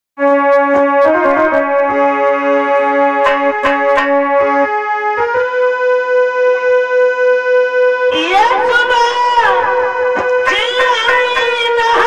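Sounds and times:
keyboard sustained chords: 0.2 - 12.0
sharp drum strokes: 3.2 - 4.3.

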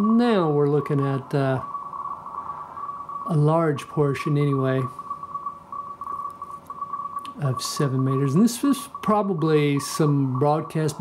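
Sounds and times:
morse code beeps: 0.0 - 11.0
receiver hiss: 0.0 - 11.0.

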